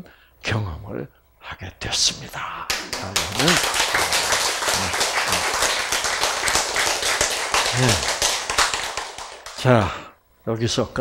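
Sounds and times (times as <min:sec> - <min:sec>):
audience applauding: 0:02.7 - 0:10.1.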